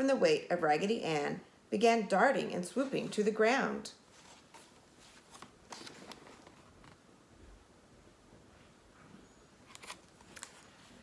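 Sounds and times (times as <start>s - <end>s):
book pages rustling: 4.0s - 7.0s, 9.6s - 11.0s.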